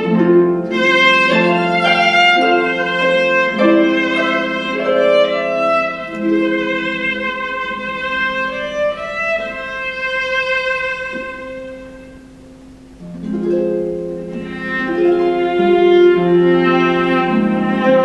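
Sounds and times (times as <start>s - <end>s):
bowed viola notes: 0.0s - 18.0s
harp accompaniment: 0.0s - 18.0s.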